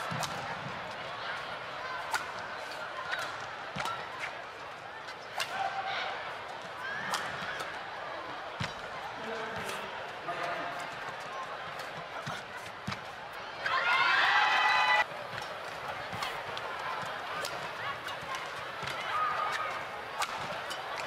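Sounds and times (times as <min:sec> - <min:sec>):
racket hitting shuttlecock: 0:00.0 - 0:00.7, 0:02.0 - 0:04.3, 0:05.3 - 0:05.8, 0:15.3 - 0:21.0
crowd murmur: 0:00.0 - 0:21.0.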